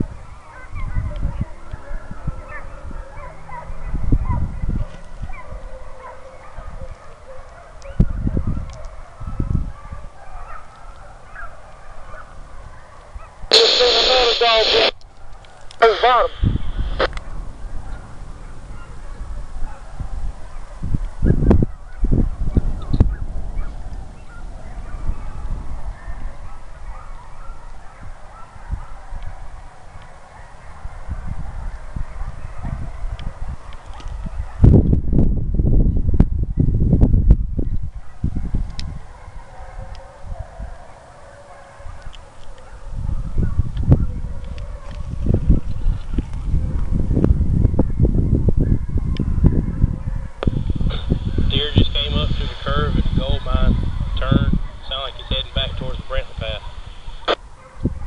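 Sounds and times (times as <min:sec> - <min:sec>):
wind rumbling on microphone: 0:00.0 - 0:58.0
distant hounds baying: 0:00.1 - 0:34.8, 0:37.9 - 0:47.0, 0:47.8 - 0:58.0.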